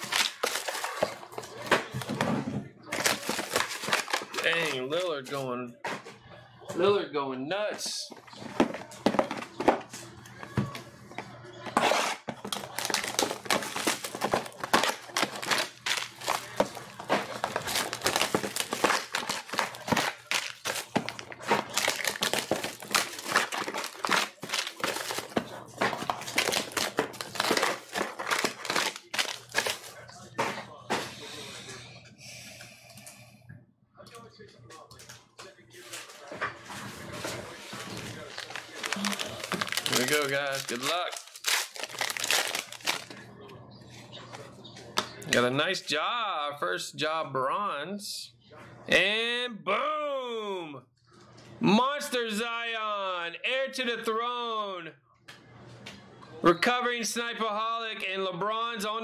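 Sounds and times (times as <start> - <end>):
plastic shrink-wrap crinkling: 0.0 - 1.5, 2.9 - 5.0, 12.4 - 30.0, 37.5 - 43.2.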